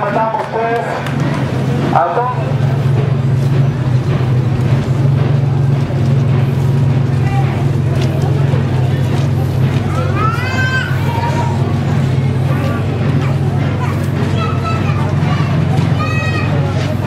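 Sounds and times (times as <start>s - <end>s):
street crowd chatter: 0.0s - 17.0s
vehicle engine droning: 0.0s - 17.0s.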